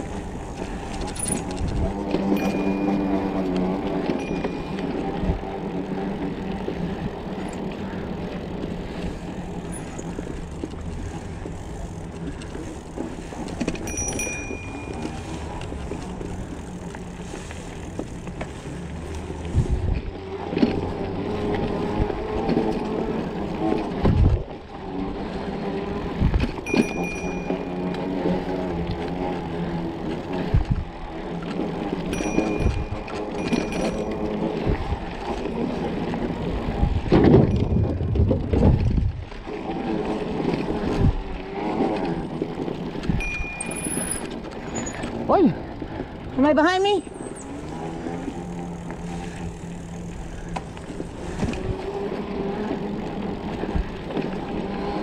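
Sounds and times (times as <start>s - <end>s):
bike knocks and rattles: 0.0s - 18.9s, 32.0s - 39.3s
bike tyre and frame rumble: 0.0s - 55.0s.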